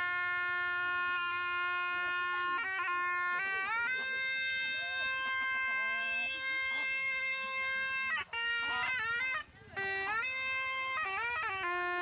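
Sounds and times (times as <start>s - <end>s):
shawm playing: 0.0s - 12.0s.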